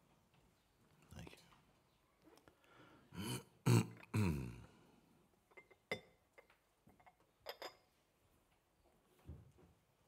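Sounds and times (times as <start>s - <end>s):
man grunting: 3.2s - 4.7s.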